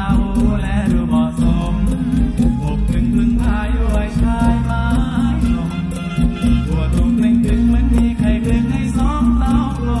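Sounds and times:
band playing on stage: 0:00.0 - 0:10.0
steady drum beat: 0:00.0 - 0:10.0.

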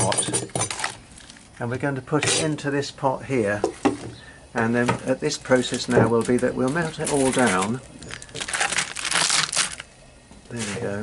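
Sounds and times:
beeswax comb crunching and crackling: 0:05.4 - 0:09.9.

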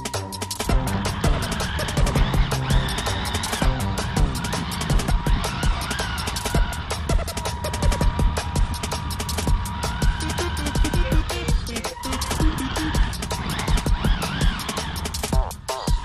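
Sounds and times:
electronic music with fast beat: 0:00.0 - 0:16.0.

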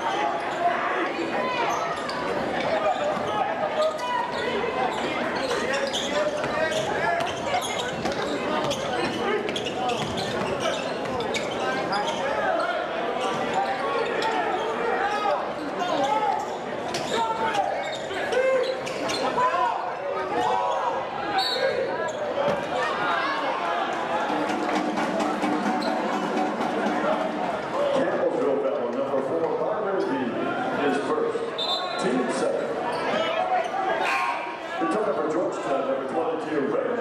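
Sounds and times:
crowd chatter: 0:00.0 - 0:37.0.

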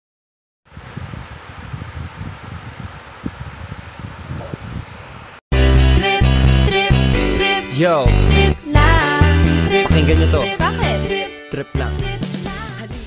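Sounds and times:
loud music: 0:05.6 - 0:13.0.

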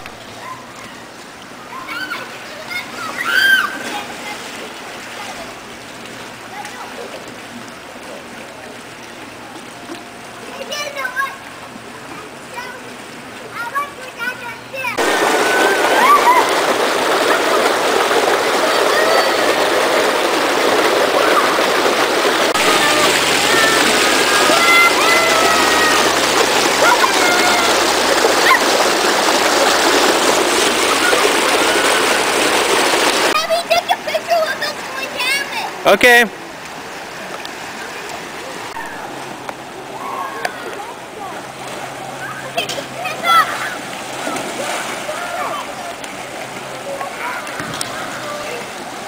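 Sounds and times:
water rushing down waterslide: 0:00.0 - 0:49.0
children's voices and shouts: 0:00.3 - 0:05.6, 0:10.4 - 0:11.6, 0:12.2 - 0:20.0, 0:22.6 - 0:29.3, 0:33.3 - 0:35.8, 0:39.8 - 0:46.0.

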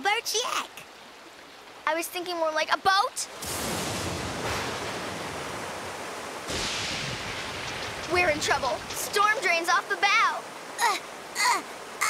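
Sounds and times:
rushing floodwater: 0:00.0 - 0:12.0
heavy rain: 0:02.9 - 0:12.0.

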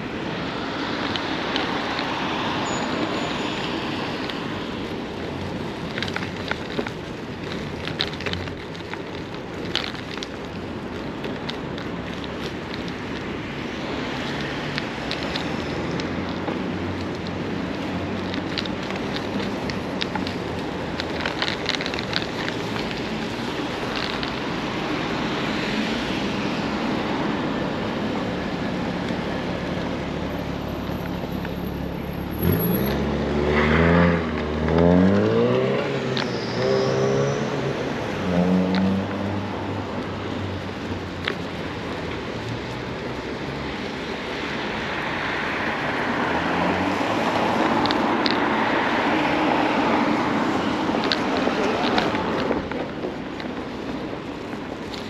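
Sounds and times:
wind: 0:00.0 - 0:55.0
vehicle engine accelerating: 0:32.3 - 0:39.4.

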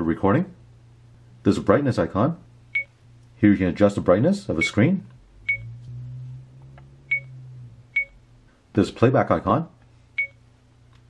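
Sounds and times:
low steady hum: 0:00.0 - 0:11.0
short high beeps: 0:05.5 - 0:05.8, 0:07.1 - 0:07.3.

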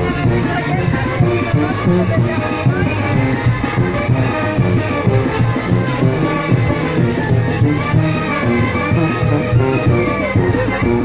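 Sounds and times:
brass band playing dance music: 0:00.0 - 0:11.0.

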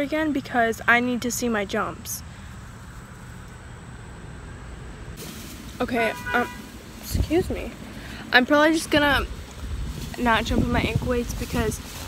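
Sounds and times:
even hiss: 0:05.1 - 0:12.0.

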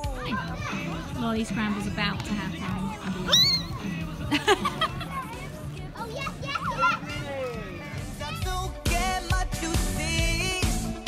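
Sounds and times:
children's excited voices: 0:00.0 - 0:08.9
background music: 0:00.0 - 0:11.0.

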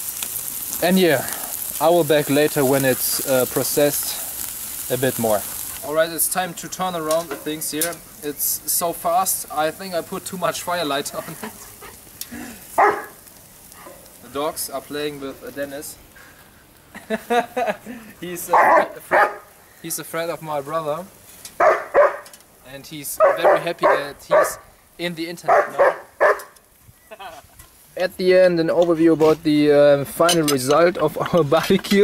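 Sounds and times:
dog barking loudly: 0:12.8 - 0:13.2, 0:18.5 - 0:19.5, 0:21.6 - 0:22.3, 0:23.2 - 0:24.7, 0:25.4 - 0:26.6.

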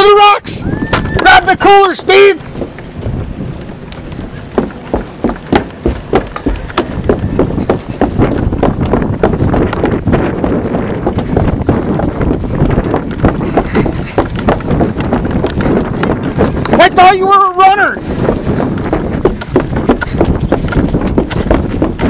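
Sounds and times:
footsteps on wooden boardwalk: 0:00.0 - 0:22.0
wind on microphone: 0:00.0 - 0:22.0
camera handling rumble: 0:11.0 - 0:16.8, 0:18.6 - 0:22.0.

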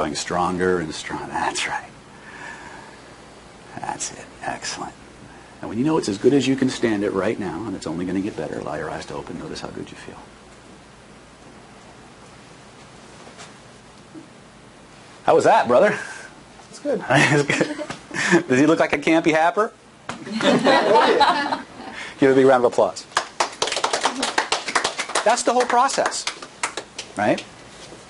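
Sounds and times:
room noise hiss: 0:00.0 - 0:28.0
people clapping: 0:23.1 - 0:27.5.

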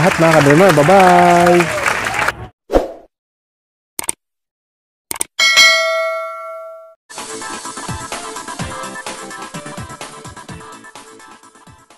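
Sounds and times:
bright bell ding: 0:05.4 - 0:07.0.

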